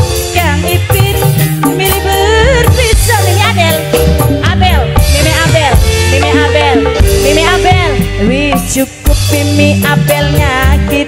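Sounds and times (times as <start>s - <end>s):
steady low bass: 2.5s - 11.0s.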